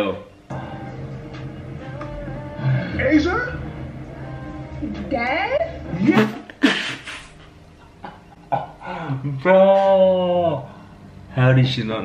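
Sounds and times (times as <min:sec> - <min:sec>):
man laughing breathily: 0:06.6 - 0:07.5, 0:08.5 - 0:09.3.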